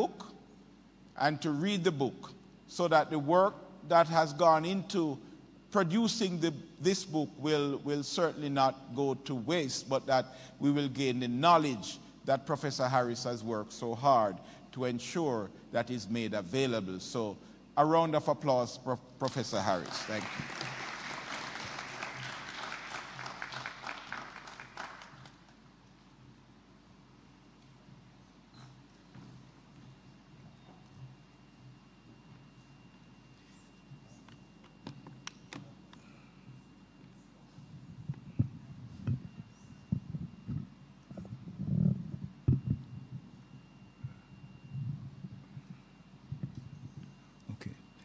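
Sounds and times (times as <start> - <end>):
audience applauding: 19.8 - 25.5.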